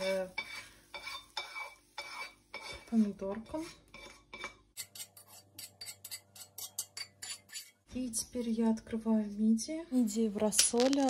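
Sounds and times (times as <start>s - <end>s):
spatula scraping frying pan: 0.0s - 7.9s.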